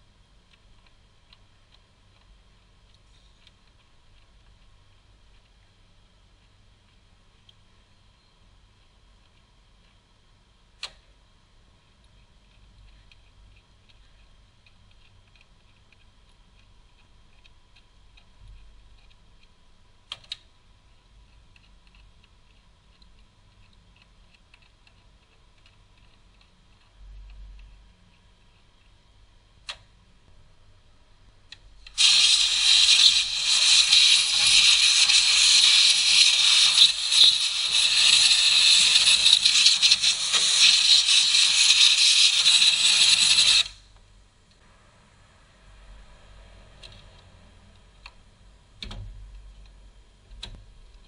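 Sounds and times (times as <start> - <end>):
air blow gun hissing: 31.9 - 43.8.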